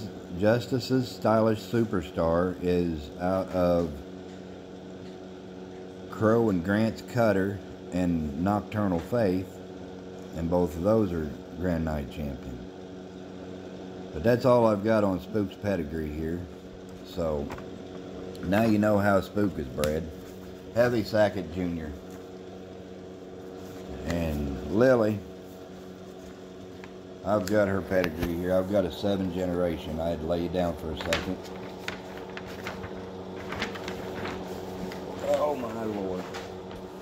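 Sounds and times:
low background hum: 0:00.0 - 0:37.0.

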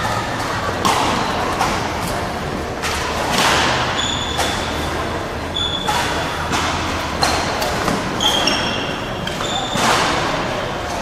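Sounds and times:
rackets hitting shuttlecock: 0:00.0 - 0:11.0.

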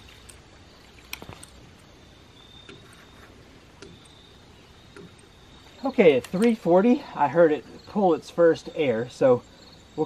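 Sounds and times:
waste valve clicking: 0:03.7 - 0:06.6.

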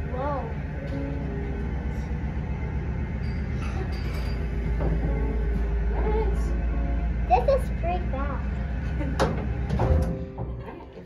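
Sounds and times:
elevator machinery hum: 0:00.0 - 0:11.0
elevator stopping thump: 0:03.2 - 0:07.0, 0:08.8 - 0:11.0.

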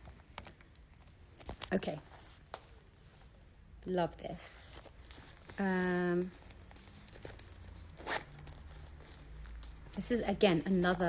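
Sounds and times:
zip being pulled: 0:07.9 - 0:08.5.

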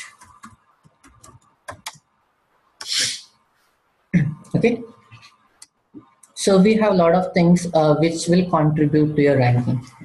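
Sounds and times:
short hiss: 0:02.8 - 0:03.3.

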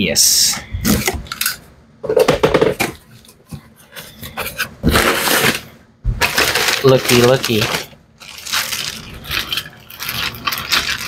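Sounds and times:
plastic bag crinkling: 0:04.9 - 0:11.0
plastic toys rattling: 0:06.2 - 0:11.0.

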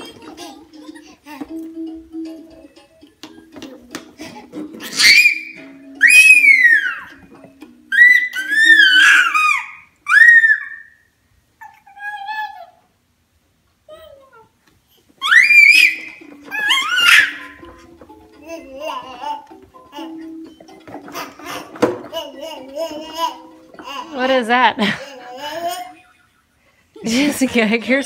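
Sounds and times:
baby squealing: 0:04.8 - 0:07.2, 0:07.9 - 0:11.0, 0:15.2 - 0:17.6.

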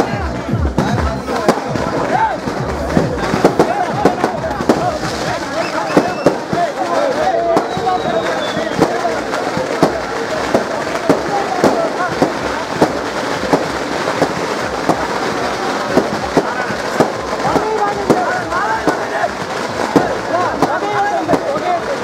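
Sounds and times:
crowd voices: 0:00.0 - 0:22.0
firecrackers banging: 0:00.0 - 0:22.0.

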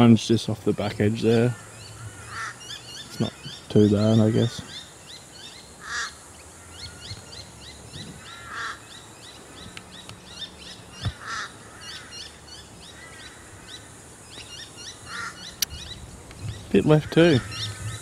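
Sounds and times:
birds chirping: 0:00.0 - 0:18.0
harsh bird calls: 0:00.0 - 0:18.0.

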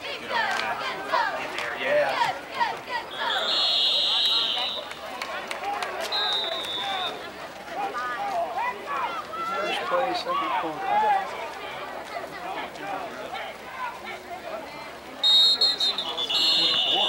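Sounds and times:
spectators talking: 0:00.0 - 0:17.0
referee whistle blasts: 0:03.1 - 0:05.0, 0:06.0 - 0:07.2, 0:15.2 - 0:17.0.

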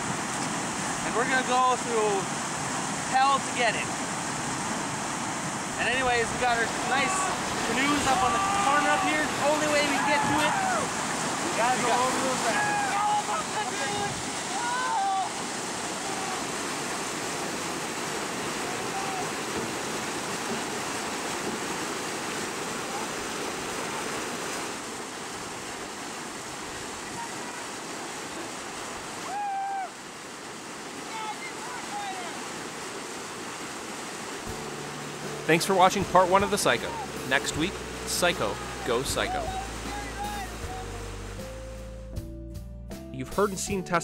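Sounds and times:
water rushing through rapids: 0:00.0 - 0:41.4.

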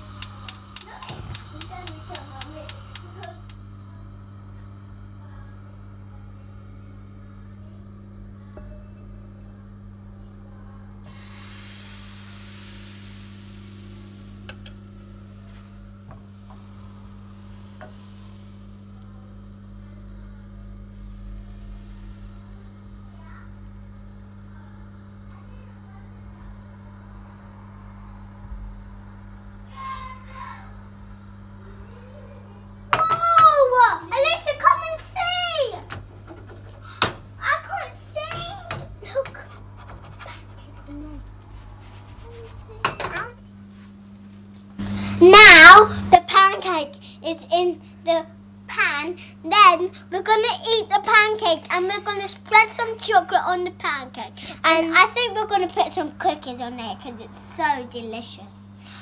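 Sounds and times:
batter sizzling in frying pan: 0:00.0 - 0:03.6, 0:11.1 - 0:19.8, 0:20.4 - 0:24.5
gas igniter clicking rapidly: 0:00.0 - 0:03.6
steady low hum: 0:00.0 - 0:59.0.

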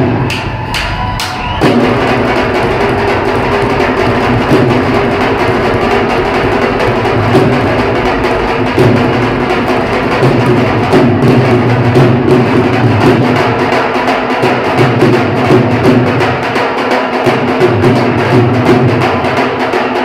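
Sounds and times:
barrel drums beaten with sticks: 0:00.0 - 0:20.0.

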